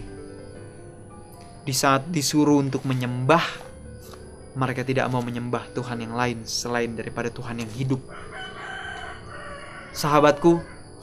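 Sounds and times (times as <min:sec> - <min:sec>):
rooster crowing: 0:08.0 - 0:11.0.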